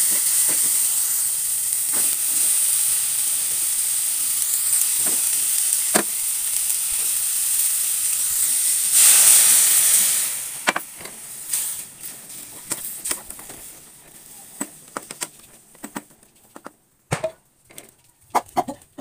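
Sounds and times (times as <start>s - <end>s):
vegetables sizzling in oil: 0.0s - 16.7s.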